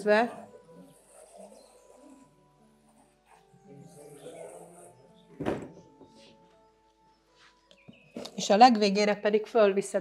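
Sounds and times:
relaxing background music: 0.0 - 10.0.

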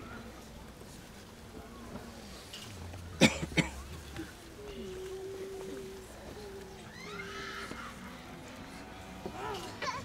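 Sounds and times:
person coughing: 3.2 - 3.8.

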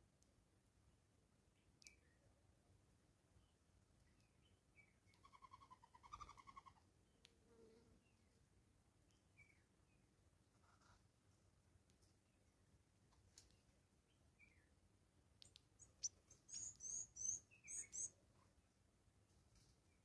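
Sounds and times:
faint birdsong: 1.1 - 20.0.

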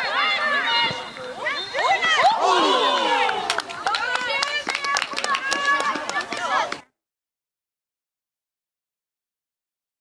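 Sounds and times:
women shouting: 1.8 - 4.1.

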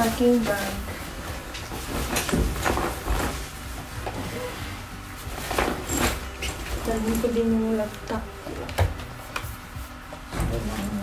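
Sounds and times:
bag rustling: 0.0 - 8.7.

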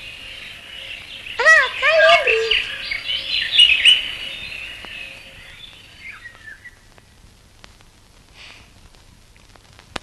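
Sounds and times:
birds chirping and twittering: 0.0 - 7.1.

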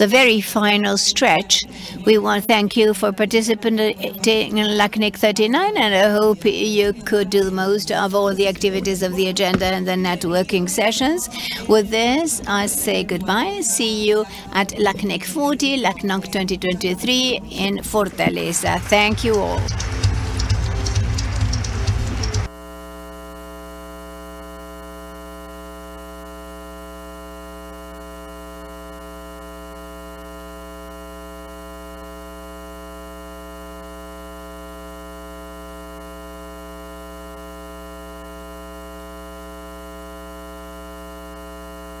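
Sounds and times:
steady electronic hum: 0.0 - 42.0
loud music: 18.2 - 22.5
audience applause: 18.5 - 22.5.

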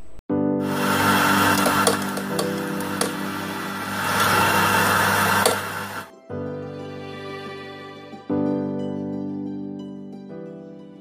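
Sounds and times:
background music: 0.3 - 11.0
electric coffee grinder: 0.6 - 6.1.

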